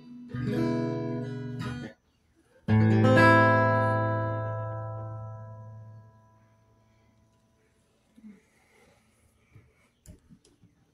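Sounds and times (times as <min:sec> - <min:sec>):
acoustic guitar chord ringing: 0:00.0 - 0:02.0, 0:02.7 - 0:06.8.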